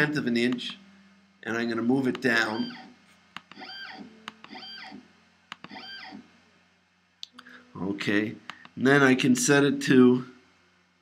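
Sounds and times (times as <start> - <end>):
mouse click: 0.5 - 0.8, 3.4 - 4.6, 5.5 - 5.8.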